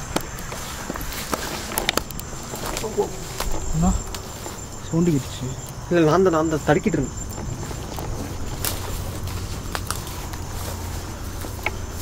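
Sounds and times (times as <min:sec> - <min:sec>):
crickets trilling: 0:00.0 - 0:12.0
man speaking: 0:04.8 - 0:07.2
rustles in brush: 0:07.5 - 0:12.0.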